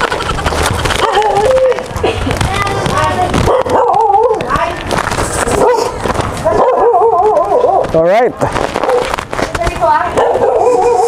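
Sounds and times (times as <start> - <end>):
dog howling and whining: 1.0 - 1.9, 3.6 - 4.5, 10.3 - 11.0.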